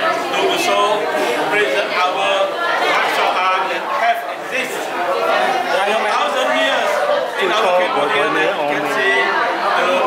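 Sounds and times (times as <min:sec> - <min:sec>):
chatter of voices: 0:00.0 - 0:10.0
man talking: 0:05.7 - 0:09.3.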